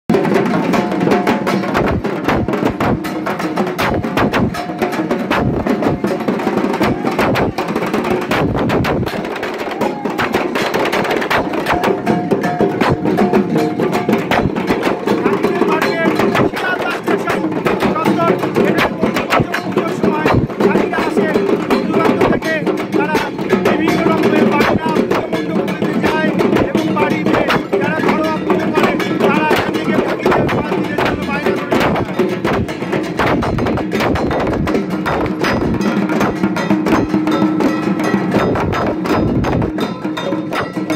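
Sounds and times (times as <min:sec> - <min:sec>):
many drums played rapidly: 0:00.1 - 0:40.9
voices: 0:14.9 - 0:32.7.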